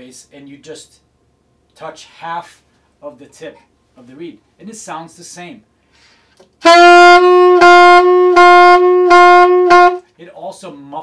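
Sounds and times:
saxophone tongued notes: 6.6 - 10.1.

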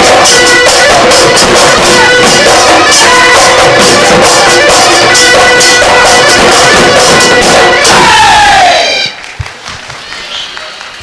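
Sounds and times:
dhol drums: 0.0 - 8.5
horn pipe playing: 0.0 - 9.2
thumps: 0.7 - 8.1.

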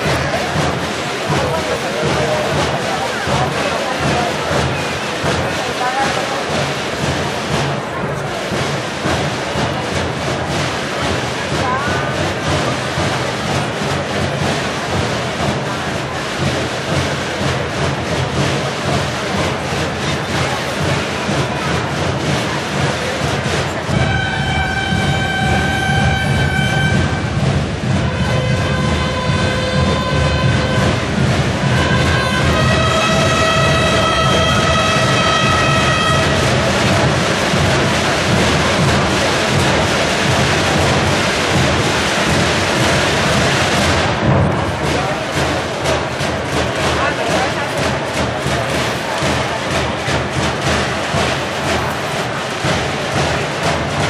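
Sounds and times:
murmur of crowd: 0.0 - 54.0
rumble of drums: 0.0 - 54.0
long held brass notes: 23.9 - 36.7.

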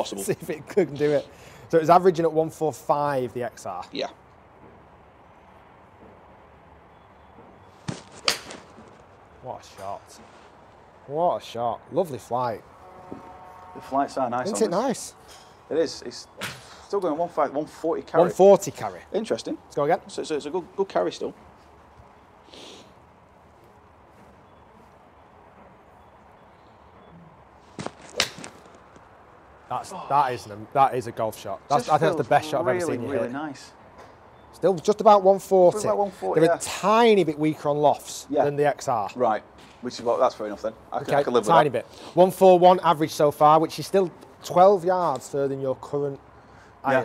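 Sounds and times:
ball smacking a screen: 7.9 - 8.9, 27.8 - 28.8
golf club striking ball: 7.9 - 8.9, 27.8 - 28.7.

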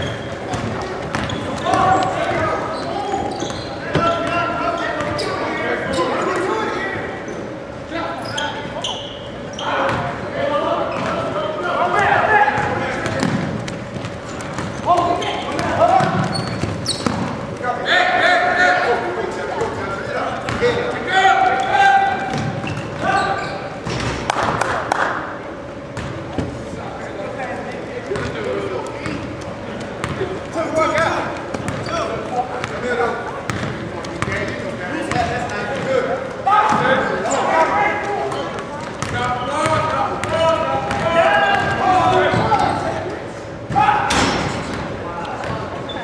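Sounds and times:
basketball bouncing on gym floor: 0.4 - 2.5, 12.6 - 17.4, 22.3 - 23.1, 28.2 - 28.4, 31.0 - 31.9, 33.5 - 35.9, 38.9 - 42.7
basketball dribbling thuds: 0.4 - 2.5, 12.6 - 17.4.

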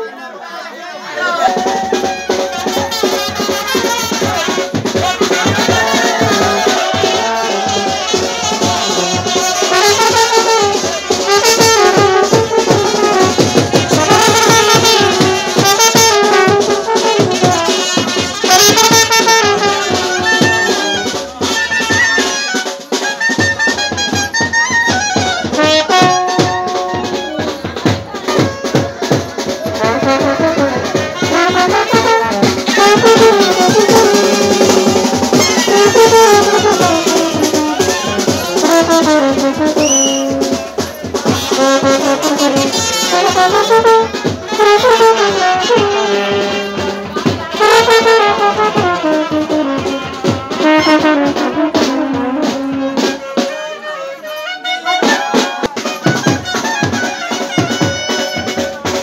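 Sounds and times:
steady drum beat: 1.2 - 53.5, 54.6 - 59.0
brass horns melody: 1.2 - 59.0.

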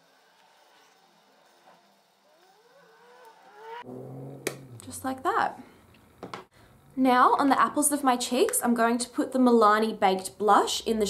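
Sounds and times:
person humming with rising pitch: 2.8 - 5.3.

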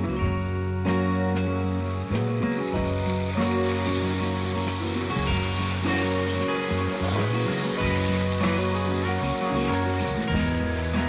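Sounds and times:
background guitar music: 0.0 - 11.0
tomato puree sizzling in hot oil: 0.0 - 11.0.

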